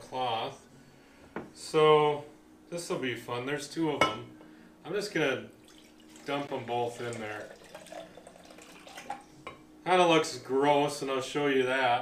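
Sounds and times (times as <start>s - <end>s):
liquid trickling and dripping: 5.6s - 9.4s
man speaking: 6.3s - 7.6s.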